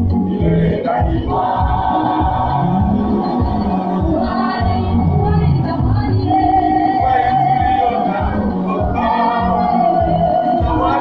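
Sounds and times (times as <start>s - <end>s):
steady low beat: 0.0s - 11.0s
voices singing gospel song: 0.0s - 11.0s.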